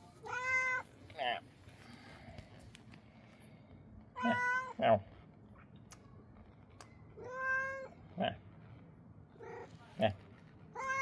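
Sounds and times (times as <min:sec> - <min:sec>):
cat meowing: 0:00.2 - 0:00.9, 0:04.2 - 0:04.8, 0:07.2 - 0:08.0, 0:10.7 - 0:11.0.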